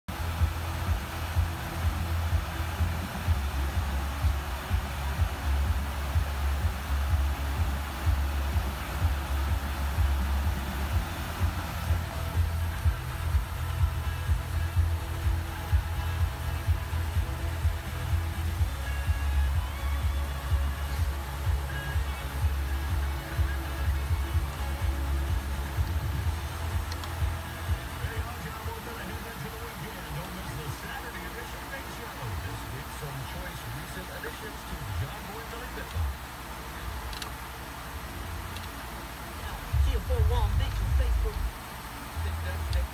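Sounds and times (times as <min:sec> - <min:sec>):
music with heavy bass beat: 0:00.1 - 0:42.9.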